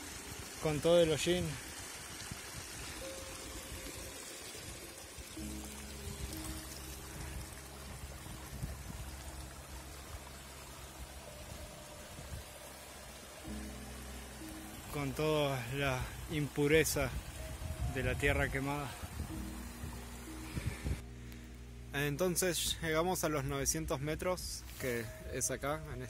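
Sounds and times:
creek trickling over stones: 0.0s - 26.0s
slow music with low held notes: 2.8s - 26.0s.

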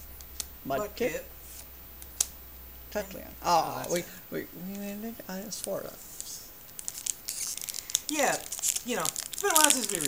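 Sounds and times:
foil wrapper crinkling: 5.5s - 10.0s.

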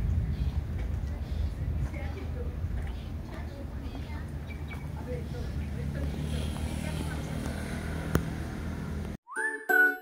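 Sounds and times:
faint distant voices: 0.2s - 8.0s.

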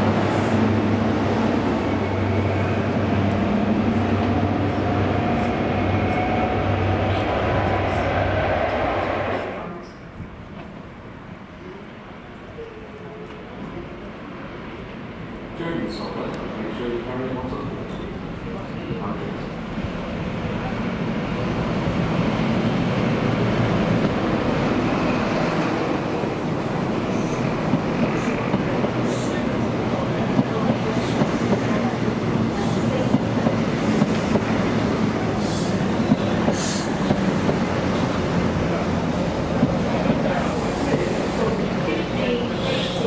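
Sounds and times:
diesel train engine drone: 0.0s - 11.5s, 17.4s - 43.0s
train wheels clicking on rails: 22.9s - 43.0s.

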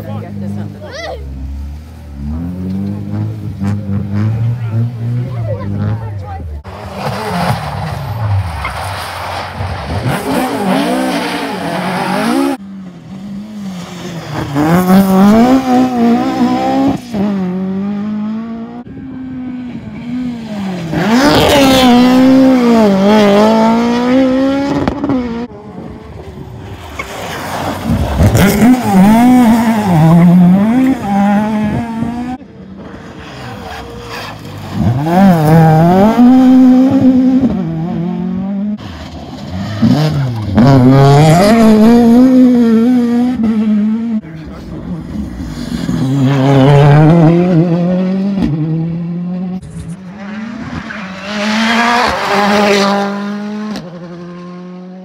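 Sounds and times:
rally car engines revving hard: 0.0s - 55.0s.

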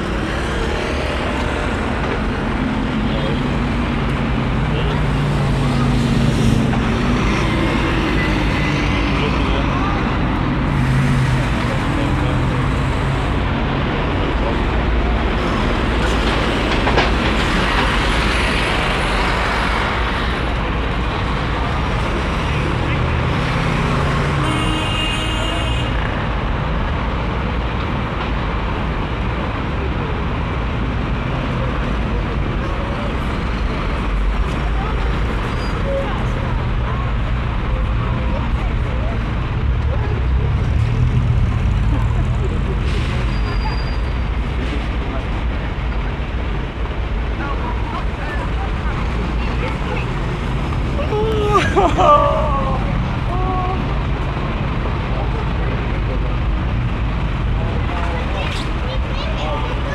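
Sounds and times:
traffic engines passing: 0.0s - 59.9s
voices of passers-by: 0.0s - 59.9s.

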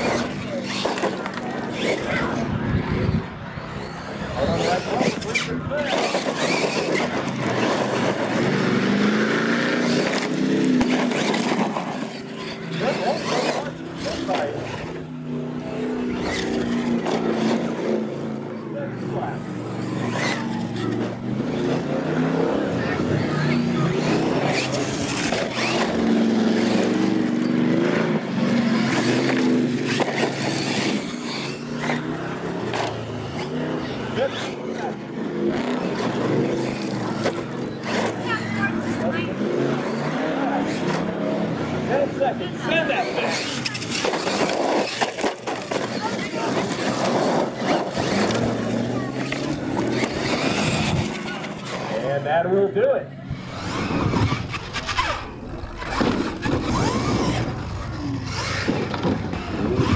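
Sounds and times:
toy truck motor revving: 0.0s - 52.4s, 53.3s - 59.9s
crowd talking: 0.0s - 59.9s
wheels on gravel: 28.3s - 52.4s.

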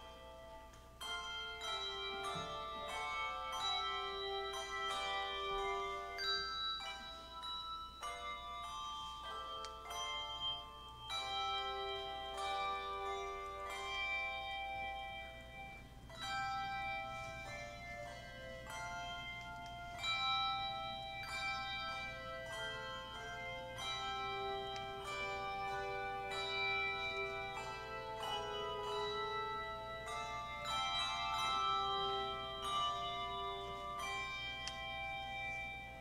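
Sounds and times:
handbell choir playing: 0.0s - 36.0s.

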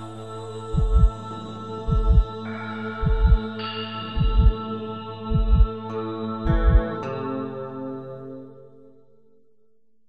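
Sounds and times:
sustained synth drone: 0.0s - 9.0s
heartbeat double thump: 0.8s - 1.2s, 1.9s - 2.3s, 3.0s - 3.4s, 4.2s - 4.6s, 5.3s - 5.7s, 6.5s - 6.9s.

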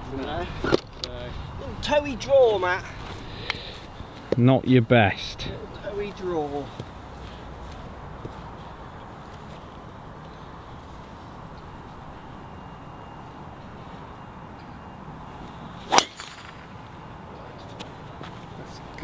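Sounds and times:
outdoor background hiss: 0.0s - 19.0s
golf club striking ball: 15.9s - 16.9s.

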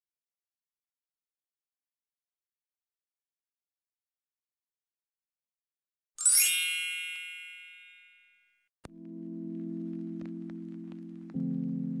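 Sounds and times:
bright chime: 6.2s - 8.6s.

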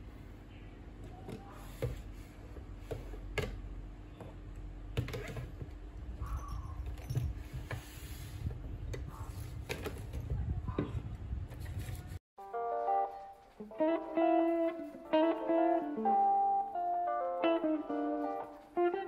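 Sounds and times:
low room rumble: 0.0s - 12.2s
plucked guitar music: 12.4s - 19.0s.

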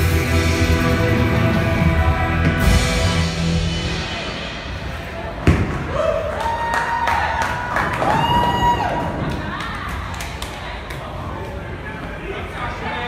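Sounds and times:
people whooping: 5.8s - 10.4s.

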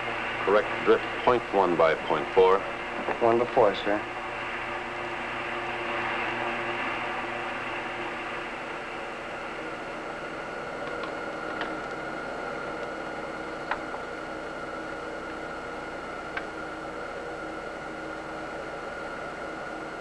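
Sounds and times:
spaceship hissing hum: 0.0s - 17.5s.

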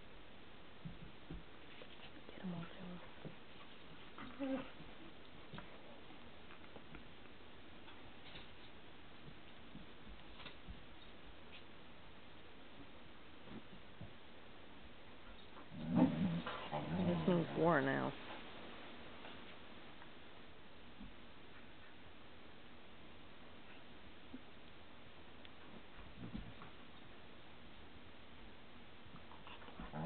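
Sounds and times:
dogs play-fighting: 0.8s - 10.8s, 15.2s - 17.5s, 29.0s - 30.0s
dog growling low: 15.7s - 17.5s.

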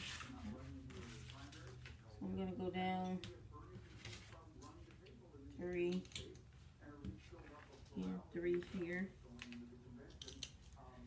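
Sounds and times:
woman's voice: 2.2s - 3.2s
shears clicking and rustling: 8.6s - 10.9s.

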